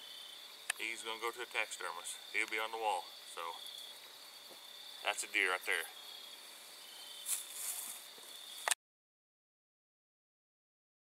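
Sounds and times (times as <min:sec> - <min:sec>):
crickets trilling: 0:00.0 - 0:08.8
brief rustle: 0:07.2 - 0:08.8.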